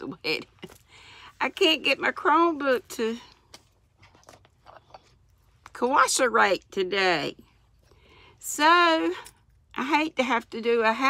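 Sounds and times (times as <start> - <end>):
woman speaking: 0.0 - 0.7, 1.3 - 3.3, 5.7 - 7.4, 8.4 - 11.0.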